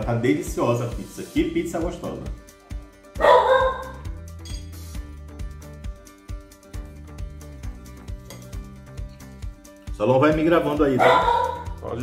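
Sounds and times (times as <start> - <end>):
background music with steady beat: 0.0 - 12.0
dog barking: 3.2 - 4.1, 11.0 - 11.8.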